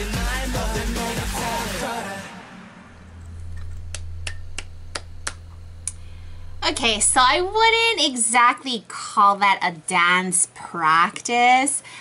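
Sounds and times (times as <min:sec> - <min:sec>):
pop music: 0:00.0 - 0:03.1
low steady hum: 0:02.8 - 0:08.2
sharp clicks: 0:03.0 - 0:07.2.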